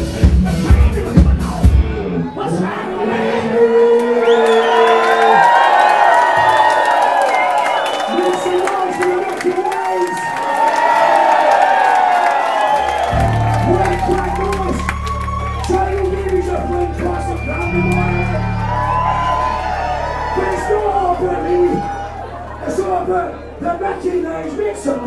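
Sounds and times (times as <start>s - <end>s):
heavy bass line: 0.0s - 2.2s, 12.9s - 25.0s
rock band playing live: 0.0s - 2.2s, 13.1s - 23.7s
crowd shouts and whoops: 2.2s - 25.0s.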